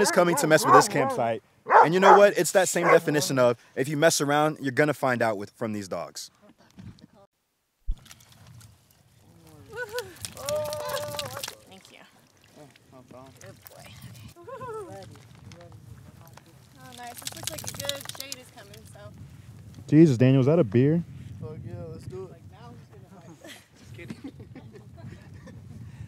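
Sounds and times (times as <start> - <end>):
water pouring and splashing: 9.7 - 13.8, 16.6 - 18.8.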